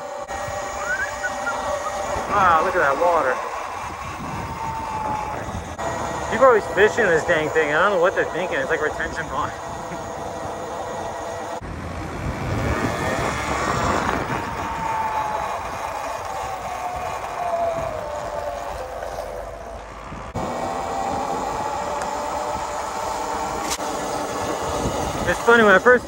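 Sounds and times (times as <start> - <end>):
tyre hum: 0.0 - 7.8
electric motor whine: 0.0 - 26.0
wind on microphone: 0.3 - 7.6, 8.4 - 25.8.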